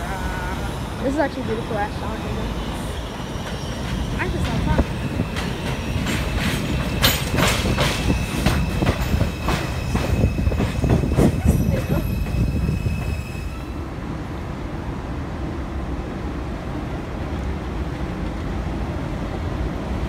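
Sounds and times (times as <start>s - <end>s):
low train rumble: 0.0s - 20.0s
train wheels clacking over rail joints: 3.4s - 13.2s.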